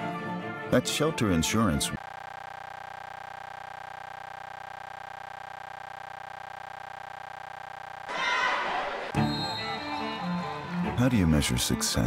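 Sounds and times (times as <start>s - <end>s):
steady electronic tone: 2.0s - 8.1s.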